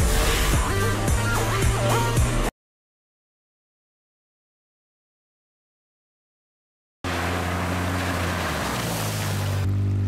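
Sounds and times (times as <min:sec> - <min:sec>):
water splashing: 0:07.1 - 0:09.7
vehicle engine running: 0:07.1 - 0:10.0.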